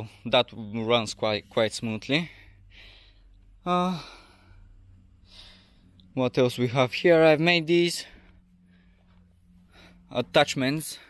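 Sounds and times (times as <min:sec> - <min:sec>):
low background rumble: 0:00.0 - 0:11.0
person breathing in: 0:02.4 - 0:06.0.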